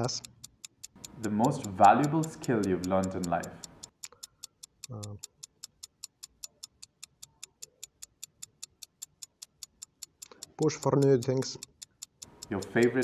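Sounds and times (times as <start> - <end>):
clock ticking: 0.0 - 13.0
man saying um: 4.9 - 5.2.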